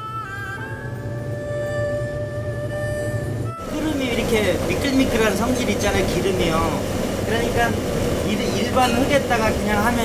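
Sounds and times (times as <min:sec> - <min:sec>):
low steady drone: 0:00.0 - 0:10.0.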